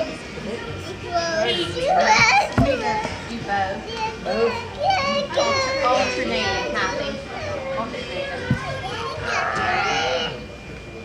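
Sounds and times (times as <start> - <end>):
voices in the room: 0.0 - 11.0.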